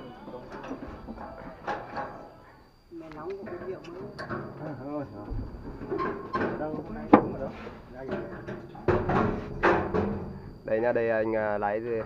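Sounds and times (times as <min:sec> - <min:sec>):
people talking: 0:00.0 - 0:05.4, 0:06.4 - 0:09.1, 0:10.7 - 0:12.0.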